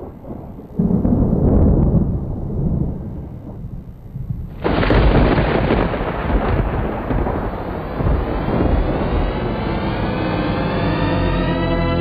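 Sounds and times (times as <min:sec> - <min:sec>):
thunder rumbling: 0:00.0 - 0:12.0.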